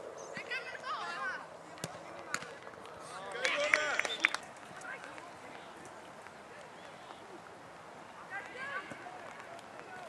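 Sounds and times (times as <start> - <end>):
steady outdoor hiss: 0.0 - 10.0.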